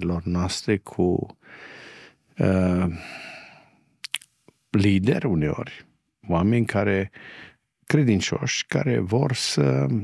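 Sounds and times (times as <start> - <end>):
man sighing: 2.9 - 3.8.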